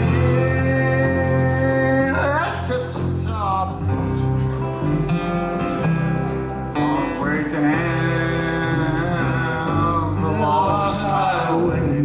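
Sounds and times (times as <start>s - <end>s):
man singing: 0.0s - 5.5s, 6.7s - 12.0s
strummed acoustic guitar: 0.0s - 12.0s.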